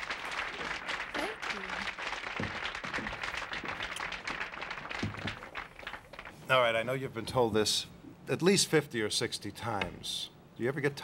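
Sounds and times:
applause: 0.0s - 6.4s.

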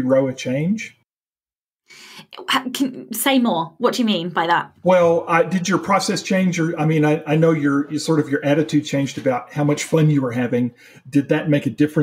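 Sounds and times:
breath in: 1.9s - 2.3s, 10.8s - 11.1s
woman speaking: 2.0s - 4.8s.

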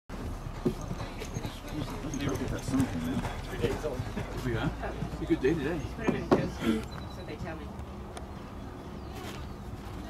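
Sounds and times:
horse hoofbeats on dirt: 0.1s - 10.0s.

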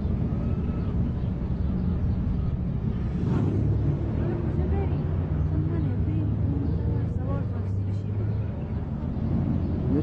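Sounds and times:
low rumble of city traffic: 0.0s - 10.0s.

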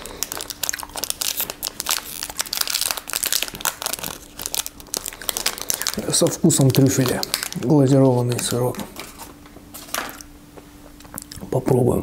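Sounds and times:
foil wrapper rustle: 0.0s - 10.2s
faint steady hum: 0.0s - 12.0s.

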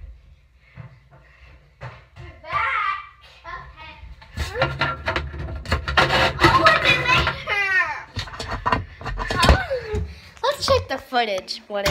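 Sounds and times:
child's voice: 2.2s - 4.1s, 6.4s - 8.1s, 9.4s - 11.9s.

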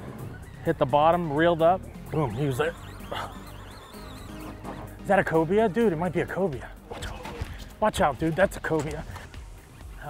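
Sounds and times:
background music with low held notes: 0.0s - 10.0s.

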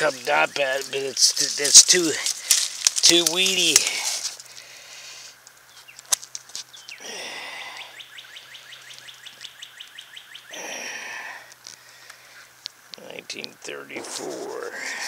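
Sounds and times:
breathy puffs of noise: 7.0s - 8.0s.

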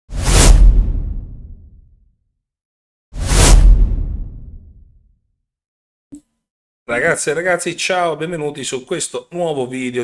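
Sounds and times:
loud swoosh: 0.1s - 1.8s, 3.2s - 5.0s
deep boom: 0.4s - 1.9s, 3.2s - 5.0s.

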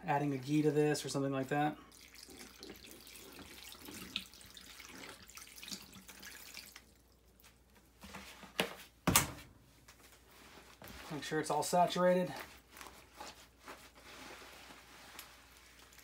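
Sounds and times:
vinegar pouring from plastic jug: 1.7s - 7.4s.

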